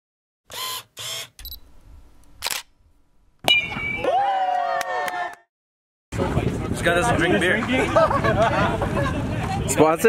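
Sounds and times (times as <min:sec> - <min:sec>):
high beep: 0:01.4 - 0:01.7
camera shutter clatter: 0:02.4 - 0:02.8.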